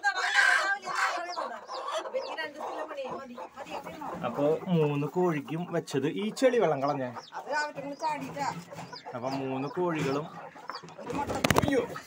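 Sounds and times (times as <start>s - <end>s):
hen clucking: 0.0s - 12.0s.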